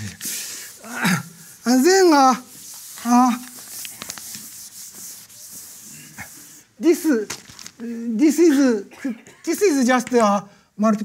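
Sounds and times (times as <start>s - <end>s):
eraser scrubbing on chalkboard: 0.0s - 7.1s.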